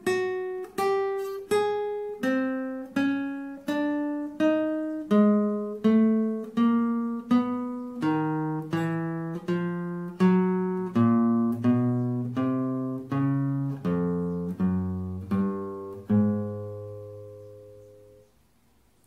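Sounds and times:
classical guitar single notes plucked: 0.0 - 18.4.

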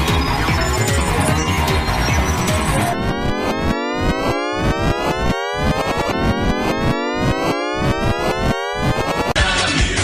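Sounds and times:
synthesized rising siren tone: 0.0 - 9.4.

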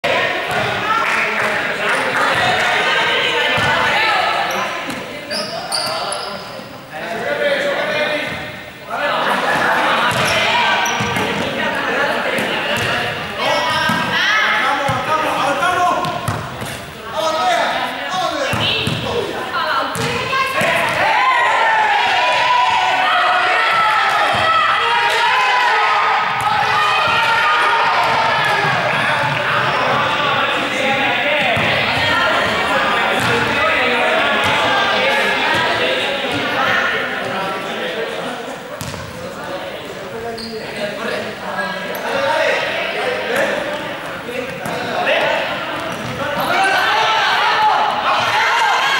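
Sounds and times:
players' voices echoing: 0.0 - 48.9
volleyballs hit and bouncing: 9.5 - 14.2, 26.2 - 37.4, 44.4 - 46.8
young people calling out: 18.1 - 30.2.

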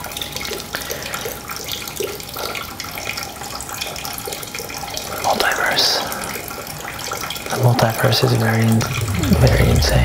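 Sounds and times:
running water hiss: 0.0 - 2.8, 4.3 - 10.0.

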